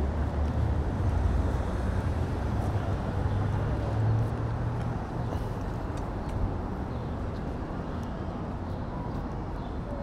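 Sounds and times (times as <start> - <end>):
traffic rumble and hum: 0.0 - 10.0.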